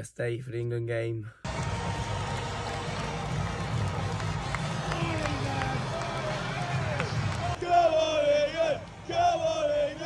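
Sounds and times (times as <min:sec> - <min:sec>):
stadium crowd din: 0:01.5 - 0:10.0.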